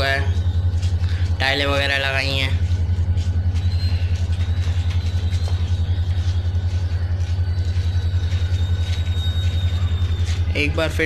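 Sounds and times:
engine idling: 0.0 - 11.0
faint high whine: 0.0 - 11.0.

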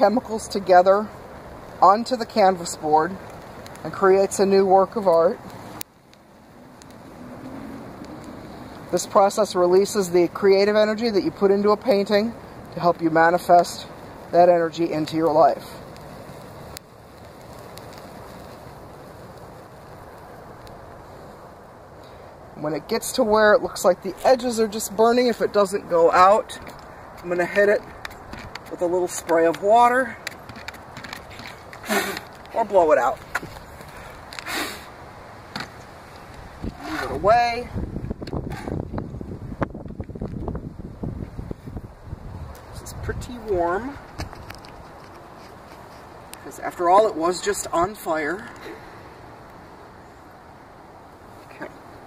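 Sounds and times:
wind rumbling on microphone: 0.0 - 52.0
small clicks and crackles: 1.1 - 9.8, 11.6 - 22.4, 26.4 - 34.5, 35.5 - 37.1, 42.5 - 46.6.

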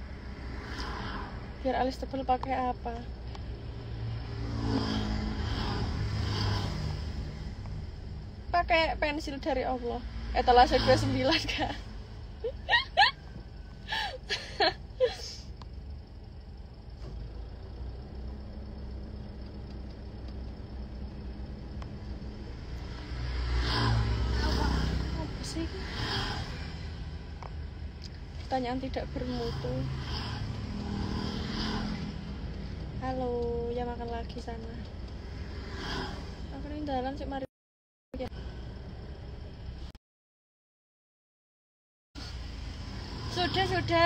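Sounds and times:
car interior rumble: 0.0 - 37.4, 42.3 - 44.0.

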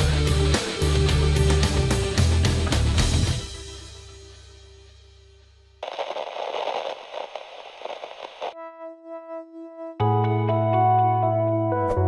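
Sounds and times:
television static hiss: 5.8 - 8.6.

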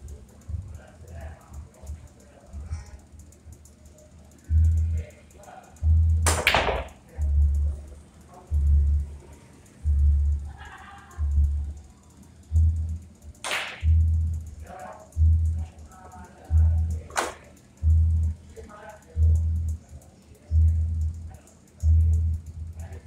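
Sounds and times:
music with steady bass beat: 0.0 - 23.0
pool balls clacking: 6.2 - 7.0.

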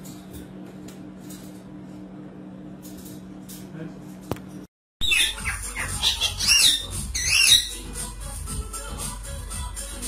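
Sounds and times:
parakeet squawks: 5.0 - 7.8.

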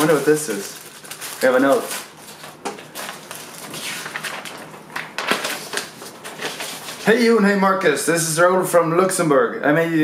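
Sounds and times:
paper and cardboard rustling: 0.0 - 7.4.

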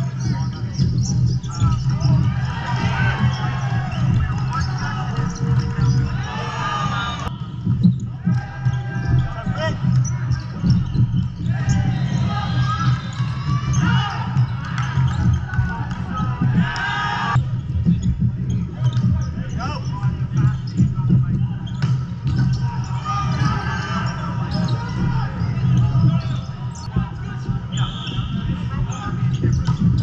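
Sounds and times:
players calling: 0.0 - 30.0
sneaker squeaks: 0.0 - 30.0.

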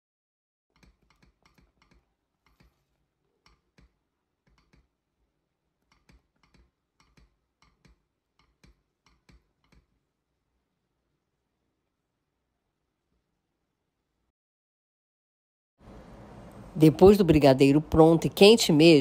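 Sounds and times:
thick mixture popping while stirred: 0.7 - 10.1.

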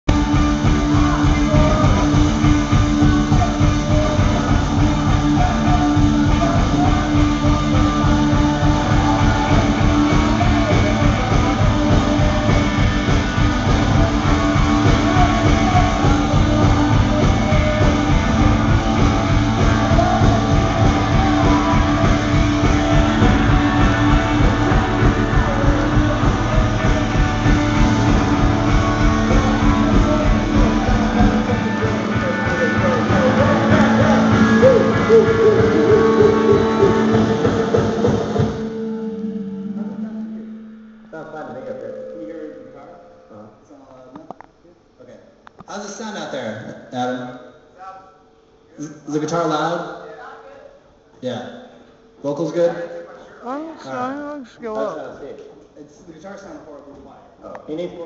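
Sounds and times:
rock band playing loudly: 0.0 - 41.0.

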